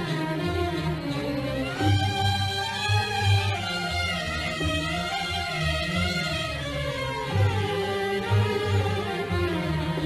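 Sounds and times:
orchestra playing: 0.0s - 10.0s
violins melody: 0.0s - 10.0s.

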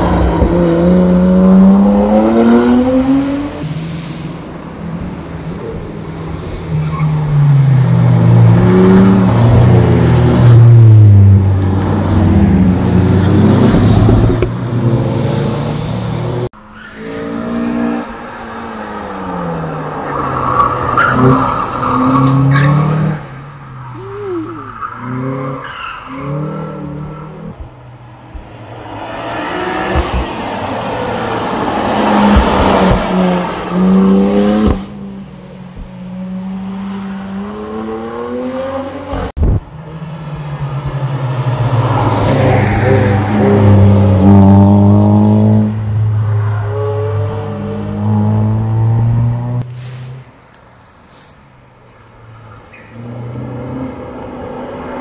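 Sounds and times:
cars passing with engines revving: 0.0s - 55.0s.

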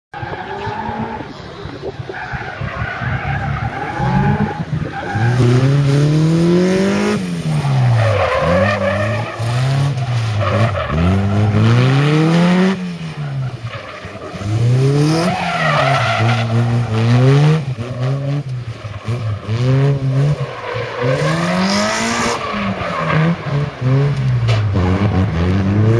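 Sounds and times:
car engine idling and revving: 0.1s - 25.9s.

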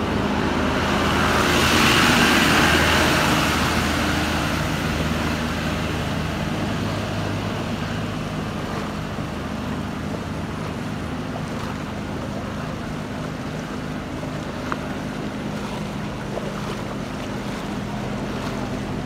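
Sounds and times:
truck engine running: 0.0s - 19.0s
water rushing and splashing: 0.0s - 19.0s.

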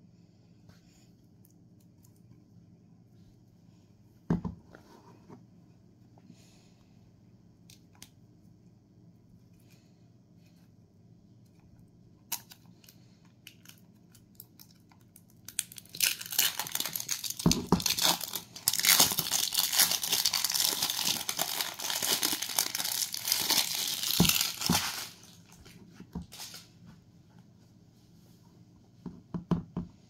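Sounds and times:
plastic packaging crinkling and tearing: 12.3s - 26.7s.

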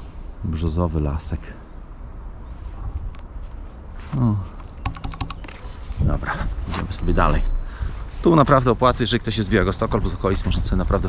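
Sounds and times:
sharp clicks: 4.6s - 5.6s.

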